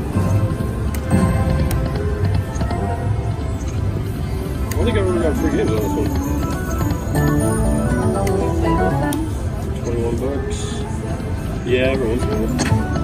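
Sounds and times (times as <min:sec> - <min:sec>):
slot machine game music: 0:00.0 - 0:13.0
casino background chatter: 0:04.7 - 0:13.0.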